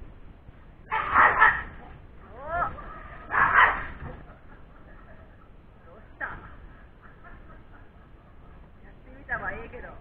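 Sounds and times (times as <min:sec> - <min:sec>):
puppy growling barks: 0:00.9 - 0:01.9, 0:03.3 - 0:04.0
puppy yelp: 0:00.9 - 0:01.9, 0:03.3 - 0:04.0.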